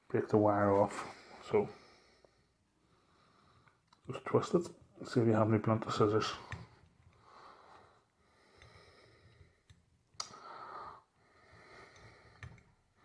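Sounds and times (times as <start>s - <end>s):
person breathing: 0.9s - 3.9s, 6.2s - 13.0s.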